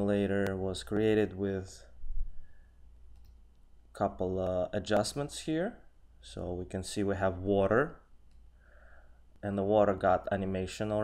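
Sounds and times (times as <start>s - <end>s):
computer mouse clicks: 3.1s - 3.7s.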